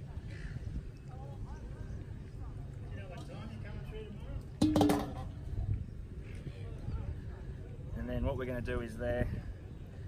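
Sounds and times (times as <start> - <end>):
metal bowl clanking on steel: 4.6 - 5.3.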